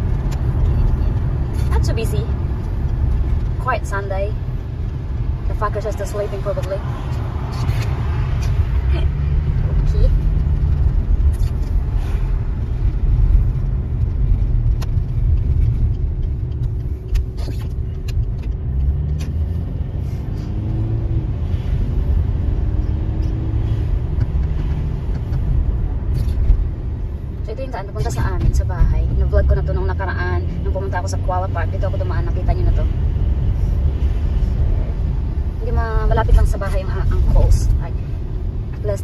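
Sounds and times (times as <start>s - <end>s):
car engine and tyres rumble: 0.0s - 39.0s.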